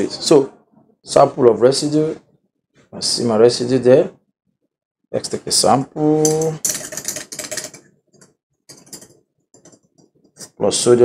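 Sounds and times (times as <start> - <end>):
glass tube rattling in wooden rack: 6.2 - 7.9.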